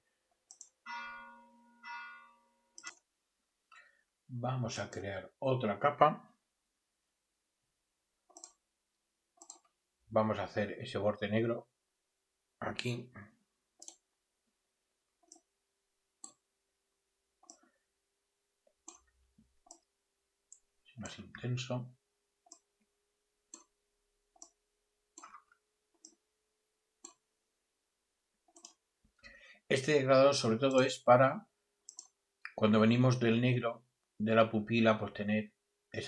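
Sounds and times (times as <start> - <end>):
faint computer mouse clicks: 0.5 - 0.8, 2.8 - 3.0, 8.3 - 8.6, 9.4 - 9.7, 13.8 - 14.0, 28.5 - 28.8, 31.9 - 32.6
bell-like chime: 0.9 - 2.8.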